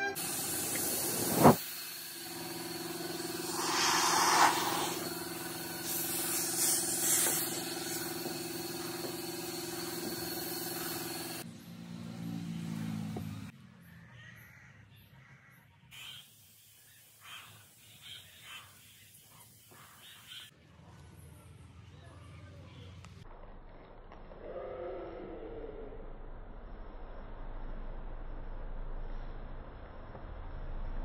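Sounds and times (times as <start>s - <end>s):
air hissing bursts: 0.2s - 11.4s
machine hum: 2.2s - 11.4s.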